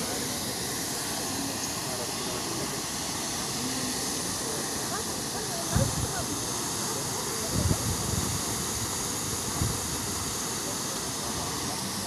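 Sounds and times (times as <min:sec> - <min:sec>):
fountain water splashing: 0:00.0 - 0:12.0.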